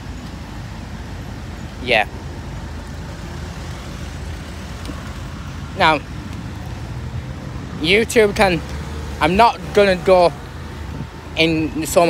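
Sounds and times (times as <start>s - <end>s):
low street background rumble: 0.0s - 12.0s
man saying yeah: 1.8s - 2.1s.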